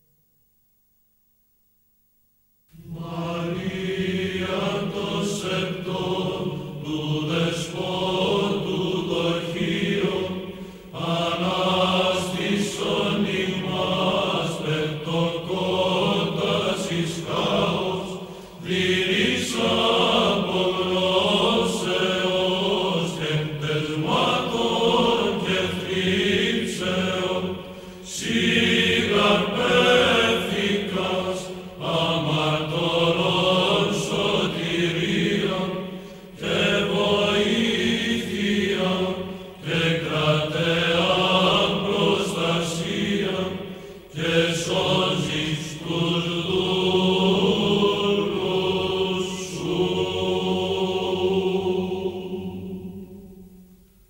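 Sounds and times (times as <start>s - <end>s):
church chant singing: 2.7s - 54.0s.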